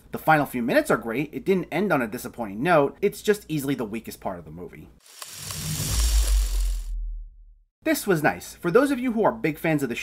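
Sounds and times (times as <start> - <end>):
hissing whoosh: 5.0 - 7.1
deep low rumble: 5.8 - 7.7.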